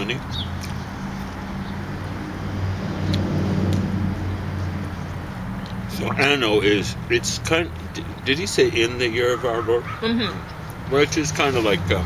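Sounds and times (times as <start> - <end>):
vehicle engine humming: 0.0 - 12.0.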